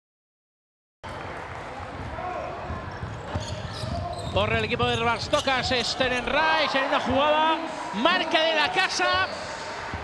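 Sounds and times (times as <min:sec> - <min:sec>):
basketball bouncing on court: 0:01.9 - 0:05.7.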